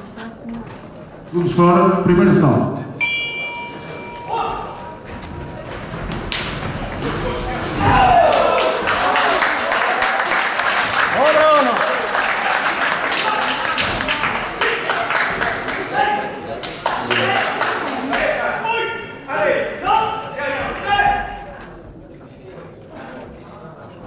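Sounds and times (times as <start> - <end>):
boxing ring bell: 3.0 - 5.1
spectators shouting: 7.0 - 16.4.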